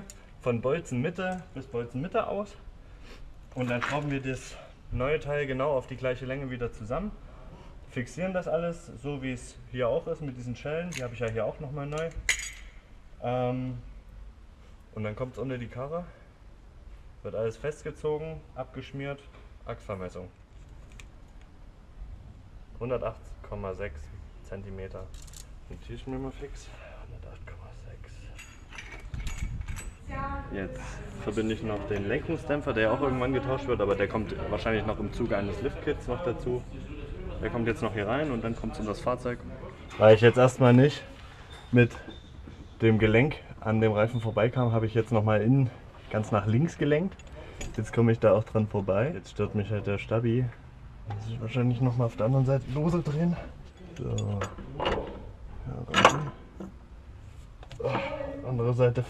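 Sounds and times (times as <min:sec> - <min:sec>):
metal clicking and clinking: 0:28.3 - 0:30.0.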